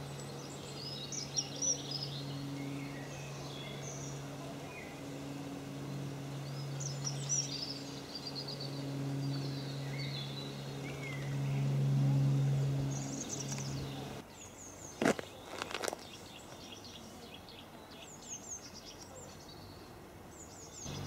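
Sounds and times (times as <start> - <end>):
low engine drone: 0.0 - 14.2
small birds chirping: 0.0 - 21.0.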